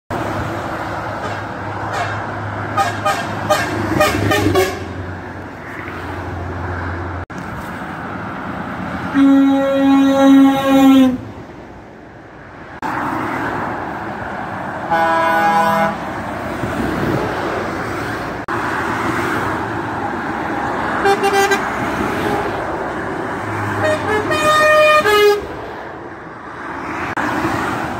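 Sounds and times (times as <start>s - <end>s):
motorway traffic: 0.1s - 27.9s
truck air horn blasts: 1.2s - 5.0s, 9.1s - 11.3s, 14.9s - 16.0s, 21.0s - 22.5s, 23.8s - 25.6s.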